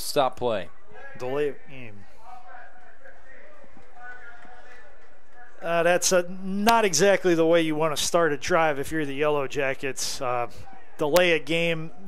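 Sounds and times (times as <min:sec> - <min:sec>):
crowd noise: 0:00.0 - 0:12.0
faint distant voices: 0:00.0 - 0:12.0.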